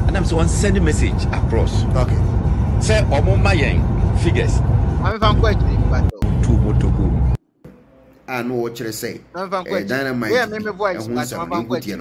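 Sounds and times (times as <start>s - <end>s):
men talking on radio: 0.0s - 7.4s
steady low rumble: 0.0s - 7.4s.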